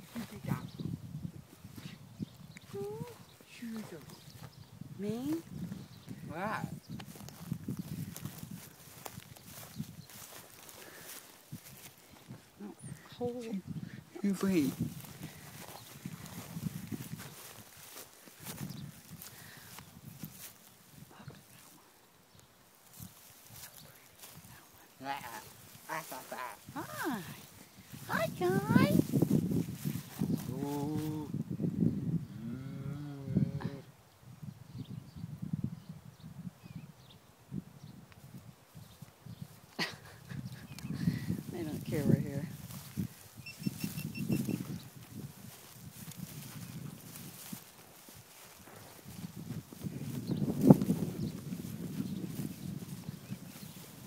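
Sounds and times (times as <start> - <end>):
hooves walking through dry grass: 0.0 - 32.0, 37.5 - 54.0.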